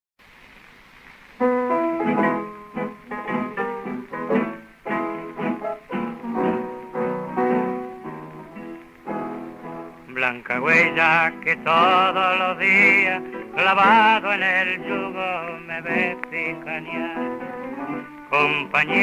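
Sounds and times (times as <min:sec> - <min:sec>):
record hiss: 0:00.2 - 0:19.0
piano and guitars tango: 0:01.0 - 0:19.0.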